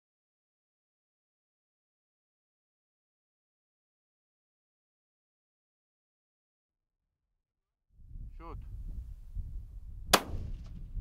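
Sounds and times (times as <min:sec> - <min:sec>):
wind on microphone: 0:07.9 - 0:11.0
rifle shot: 0:10.1 - 0:10.8.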